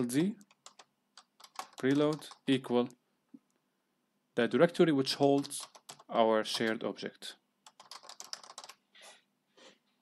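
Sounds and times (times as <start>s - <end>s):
faint keyboard typing: 0.0s - 3.6s, 5.2s - 6.9s, 7.6s - 8.8s.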